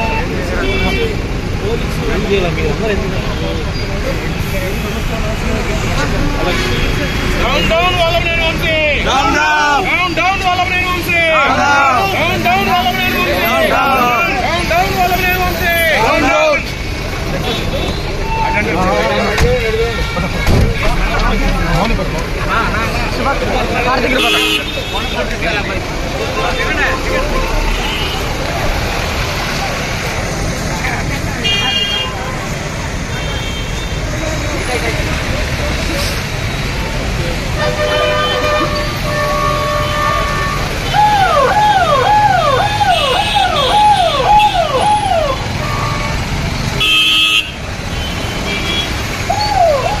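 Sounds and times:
crowd chanting and shouting: 5.4s - 31.4s
car horns honking: 6.0s - 21.5s, 23.9s - 29.3s, 31.4s - 34.1s, 37.4s - 49.8s
police siren wailing: 40.9s - 46.0s, 49.2s - 50.0s.

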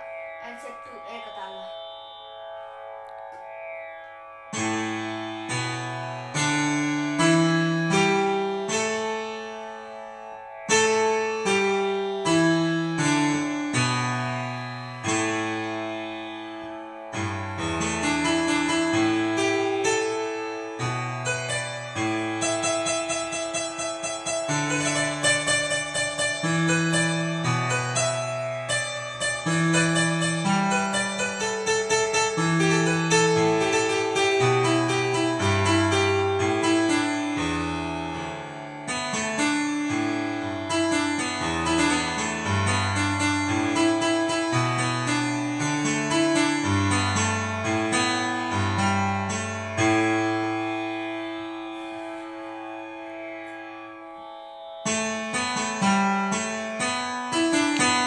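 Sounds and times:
electronic keyboard melody: 0.0s - 58.0s.

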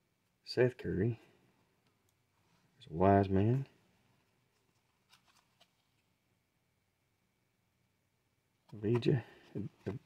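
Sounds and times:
trading cards shuffled by hand: 4.6s - 6.1s.

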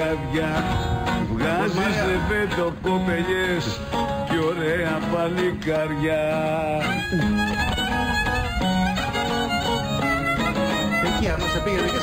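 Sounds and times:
plucked lute accompaniment: 0.0s - 12.0s
violin ornamented melody: 6.8s - 12.0s.

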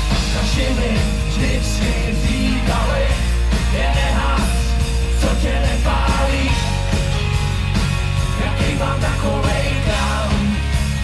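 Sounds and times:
pop rock band playing live: 0.0s - 11.0s.

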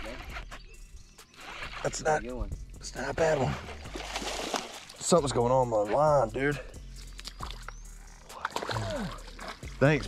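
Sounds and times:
shallow water splashing: 1.3s - 6.0s, 7.0s - 10.0s.

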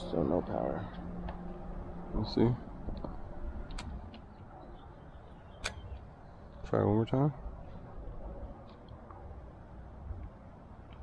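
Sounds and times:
faint outdoor background noise: 0.0s - 11.0s
sharp click: 5.6s - 5.9s.

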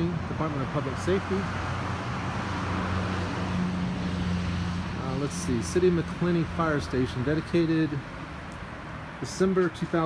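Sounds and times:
road traffic: 0.0s - 10.0s.

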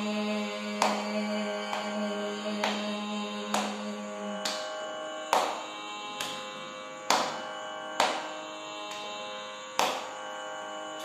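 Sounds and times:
tanpura drone: 0.0s - 11.0s.

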